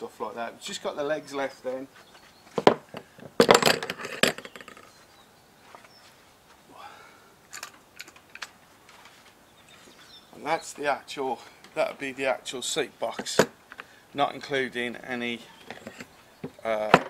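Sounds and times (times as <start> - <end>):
metal legs clinking on table: 3.4 - 4.9.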